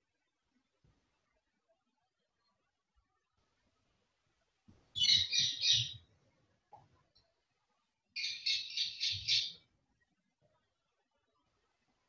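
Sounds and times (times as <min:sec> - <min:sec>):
bird chirping: 0:05.0 - 0:06.1, 0:08.2 - 0:09.6.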